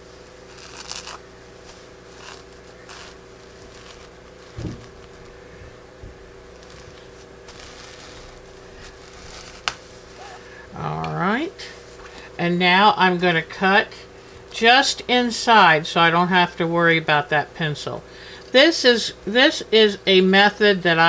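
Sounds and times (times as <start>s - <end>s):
cloth rustling: 0.0s - 5.8s, 6.5s - 10.6s.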